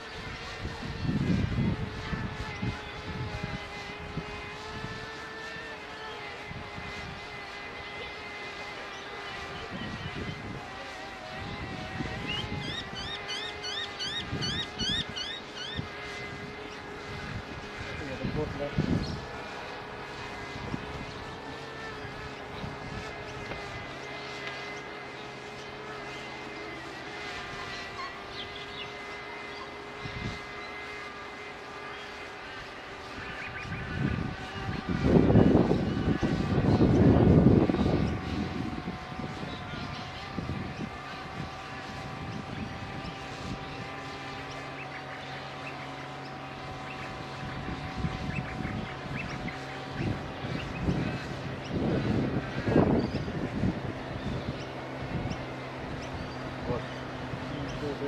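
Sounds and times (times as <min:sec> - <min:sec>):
drone propellers whining: 0:00.0 - 0:58.0.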